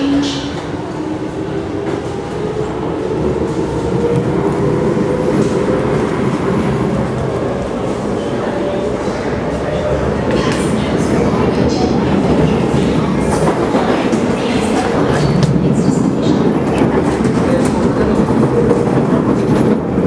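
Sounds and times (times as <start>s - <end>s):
train wheels rumbling: 0.0s - 20.0s.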